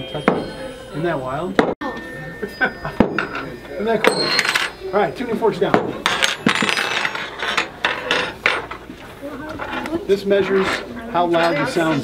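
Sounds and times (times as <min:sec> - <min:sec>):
metal tuning forks clinking: 0:00.0 - 0:08.8.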